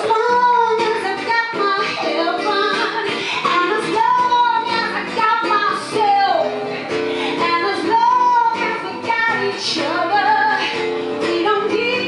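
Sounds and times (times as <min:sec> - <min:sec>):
guitar accompaniment: 0:00.0 - 0:12.0
woman singing into a microphone: 0:00.0 - 0:12.0.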